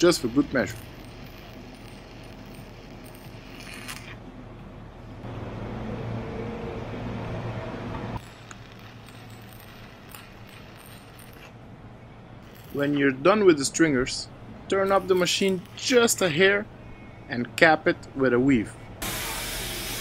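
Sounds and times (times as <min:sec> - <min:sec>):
welding arc crackling and hissing: 0:00.0 - 0:04.2, 0:08.2 - 0:11.6, 0:19.0 - 0:20.0.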